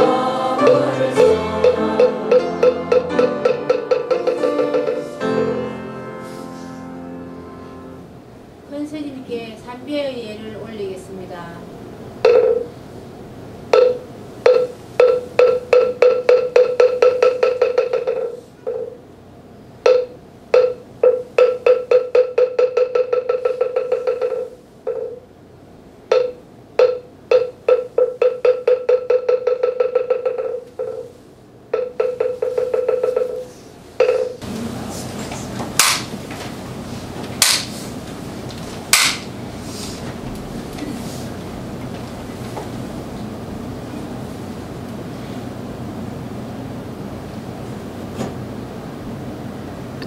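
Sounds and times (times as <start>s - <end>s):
wooden fish struck with mallet: 0.7s - 5.1s, 13.8s - 18.9s, 19.9s - 25.2s, 26.1s - 31.1s, 31.8s - 33.4s, 34.0s - 34.4s
rustling of people sitting: 32.4s - 45.5s.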